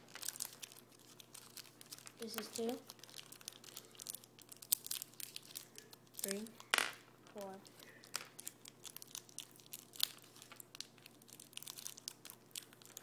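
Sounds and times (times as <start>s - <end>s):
candy wrappers crinkling and tearing: 0.0s - 13.0s.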